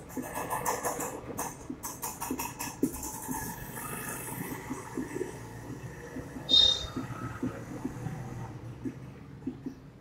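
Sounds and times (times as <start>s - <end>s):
marker scratching on whiteboard: 6.5s - 7.1s.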